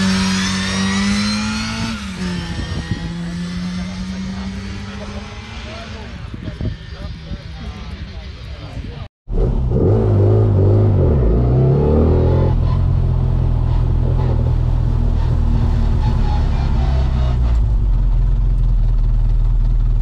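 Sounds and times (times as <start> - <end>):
car engine revving: 0.0 - 8.6, 9.3 - 19.0.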